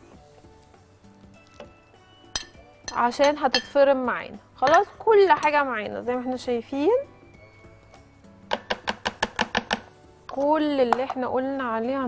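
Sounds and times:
plastic cup knocking on bowl: 8.5s - 9.9s.

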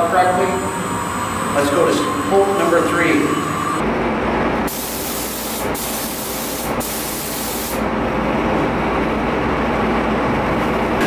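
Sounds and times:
spray gun air hiss: 4.7s - 7.9s.

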